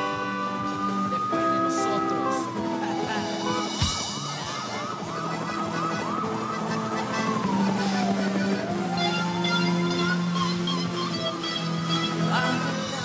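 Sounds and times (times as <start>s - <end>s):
keyboard chords: 0.0s - 13.0s
siren wail: 0.0s - 13.0s.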